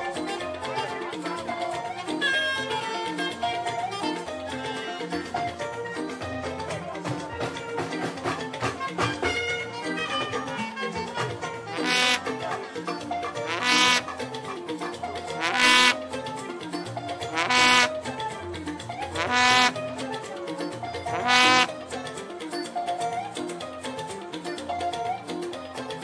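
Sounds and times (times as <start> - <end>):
keyboard melody over percussion: 0.0 - 26.0
loud short held note: 11.7 - 12.2, 13.5 - 14.0, 17.4 - 17.9, 21.1 - 21.7.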